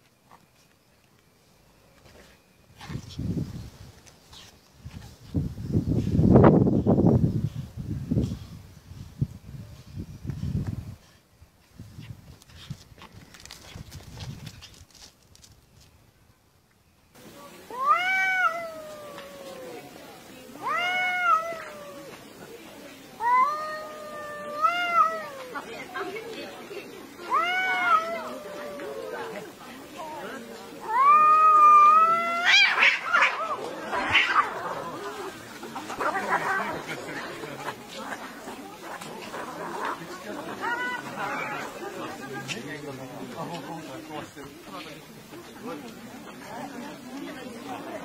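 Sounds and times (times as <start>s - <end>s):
cats screeching scuffle: 17.7s - 19.9s, 20.6s - 22.3s, 23.2s - 25.7s, 27.2s - 29.4s, 30.8s - 41.7s
cats yowling: 17.7s - 20.0s, 20.6s - 22.2s, 23.2s - 25.7s, 27.3s - 29.5s, 30.8s - 34.9s.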